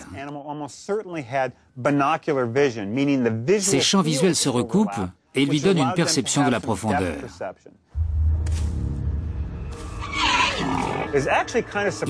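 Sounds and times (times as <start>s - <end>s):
harsh snarling roar: 10.1s - 11.2s.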